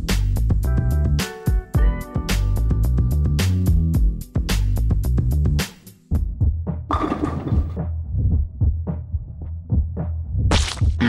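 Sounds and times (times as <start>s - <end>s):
marbles clattering: 6.9s - 7.8s.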